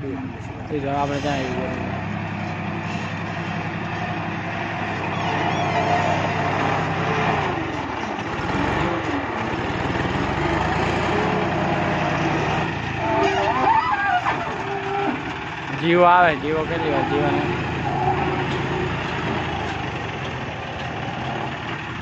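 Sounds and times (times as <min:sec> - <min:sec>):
diesel tractor engines running: 0:00.0 - 0:22.0.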